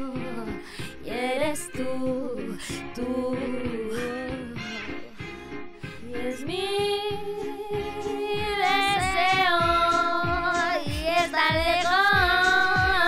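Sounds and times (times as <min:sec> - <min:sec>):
person singing sliding notes: 0:05.9 - 0:13.0
kick drum beat: 0:07.8 - 0:13.0.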